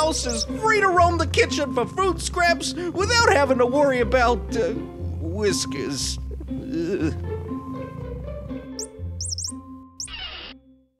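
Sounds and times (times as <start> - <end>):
cartoon mouse squeaks: 0.1 - 0.5, 8.8 - 10.6.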